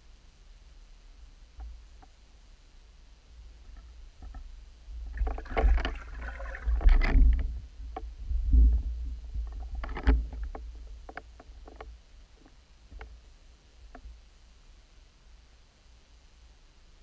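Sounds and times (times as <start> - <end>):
underwater knocks and scrapes: 3.7 - 13.2
underwater water rumble: 4.9 - 11.0.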